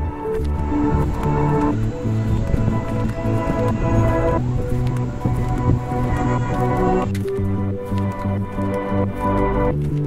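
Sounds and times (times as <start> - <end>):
background music with pulsing bass: 0.0 - 10.0.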